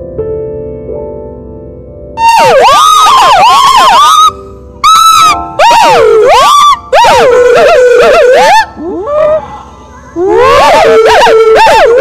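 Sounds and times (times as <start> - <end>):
gibbon whooping calls: 2.2 - 9.4.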